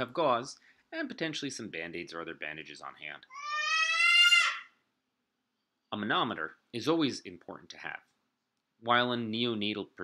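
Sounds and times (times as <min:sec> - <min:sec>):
high-pitched animal-like cry: 0:03.3 - 0:04.8.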